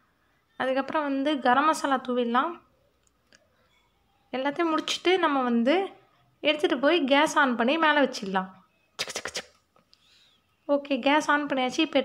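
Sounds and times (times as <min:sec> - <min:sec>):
woman speaking: 0:00.6 - 0:02.7, 0:04.3 - 0:09.4, 0:10.6 - 0:12.0.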